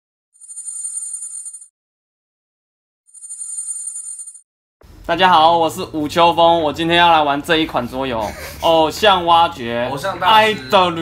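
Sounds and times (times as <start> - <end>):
telephone ringing: 0.4 - 1.7, 3.1 - 4.4.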